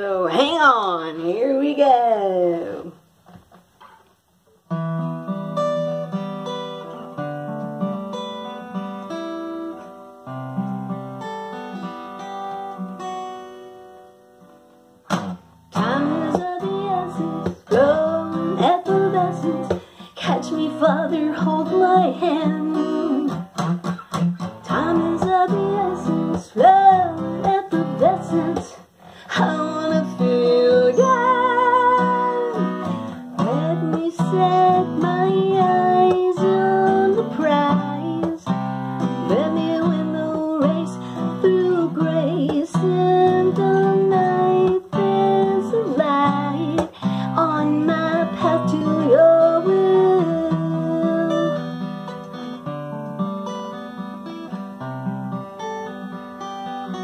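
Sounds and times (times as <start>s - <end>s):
woman singing: 0.0s - 3.0s, 15.7s - 23.5s, 24.6s - 52.0s
acoustic guitar: 0.0s - 57.0s.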